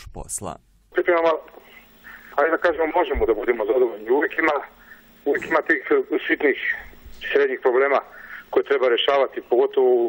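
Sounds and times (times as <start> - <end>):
man speaking over telephone: 0.0 - 10.0.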